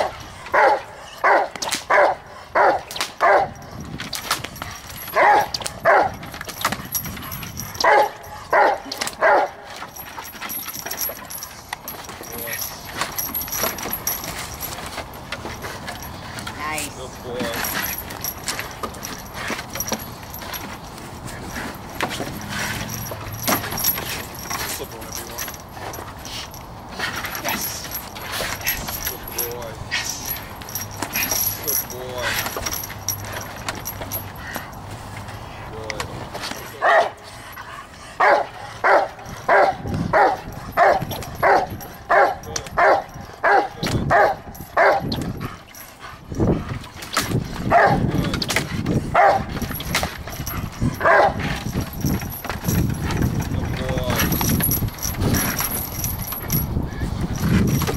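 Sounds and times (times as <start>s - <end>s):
leash chain rattling: 0.0s - 57.9s
dog barking: 0.5s - 3.6s, 5.1s - 6.2s, 7.8s - 9.6s, 36.8s - 37.2s, 38.2s - 45.1s, 47.7s - 48.0s, 49.1s - 49.5s, 51.0s - 51.4s.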